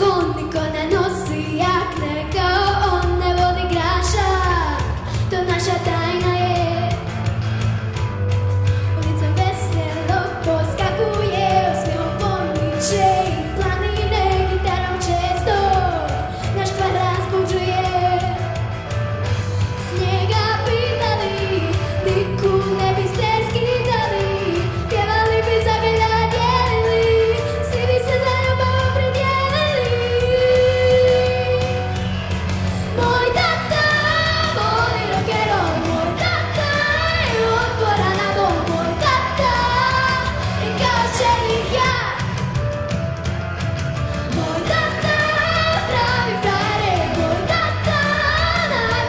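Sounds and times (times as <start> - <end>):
girl singing into a microphone: 0.0 - 7.0, 8.8 - 18.4, 19.8 - 31.8, 32.7 - 42.4, 44.2 - 49.0
rock backing track with bass and drums: 0.0 - 49.0.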